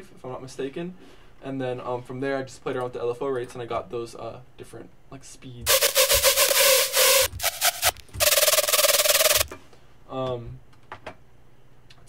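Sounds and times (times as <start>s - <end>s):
distorted stuttering synth notes: 5.7s - 9.5s.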